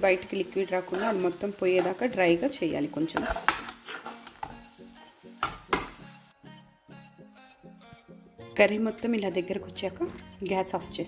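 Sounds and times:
light sizzle: 0.0s - 6.3s
background music: 0.0s - 11.0s
metal spoon scraping steel pan: 0.8s - 2.0s, 3.0s - 4.5s.

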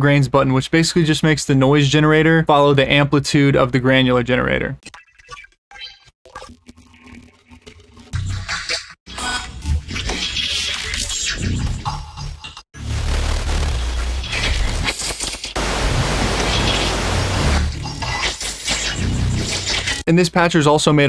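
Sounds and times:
steady low bass: 12.9s - 14.8s
synth noise wash: 15.6s - 17.7s.

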